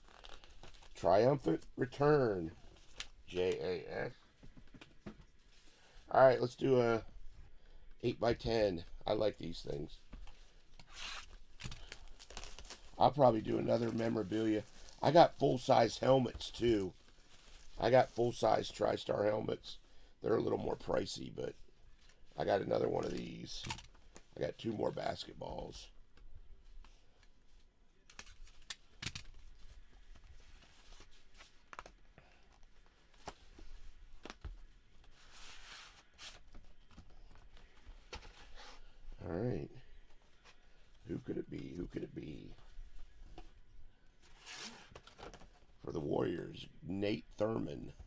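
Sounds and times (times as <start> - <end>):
plastic shrink wrap tearing: 10.9 - 13.0
packaging rustling: 11.0 - 15.7.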